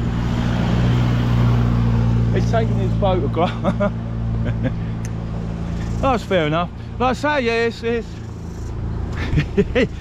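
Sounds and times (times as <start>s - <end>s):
small motorbike engine running: 5.5s - 6.8s, 7.5s - 10.0s.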